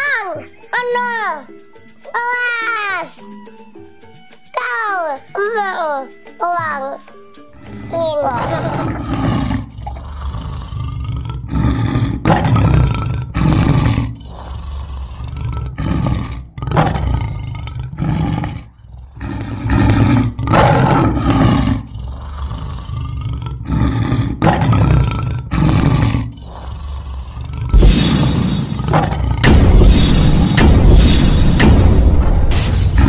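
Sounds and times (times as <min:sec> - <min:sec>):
lion-like roars: 0:08.4 - 0:30.6.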